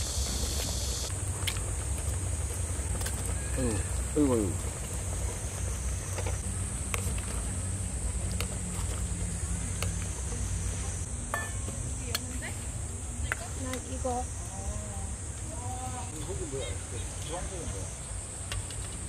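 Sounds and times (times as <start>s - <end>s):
high insect drone: 0.0s - 19.0s.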